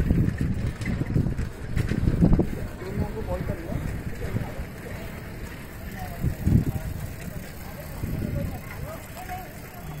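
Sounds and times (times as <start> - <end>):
distant voices: 0.0 - 10.0
outdoor background noise: 0.0 - 10.0.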